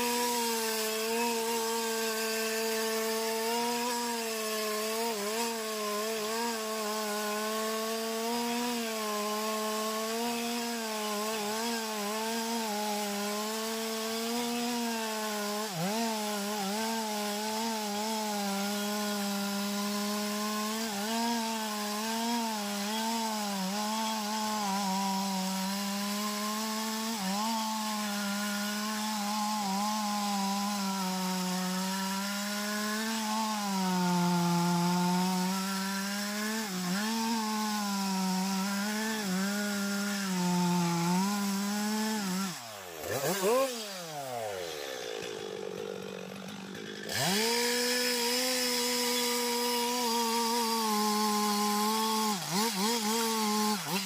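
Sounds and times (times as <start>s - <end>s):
chainsaw cutting wood: 0.0s - 54.0s.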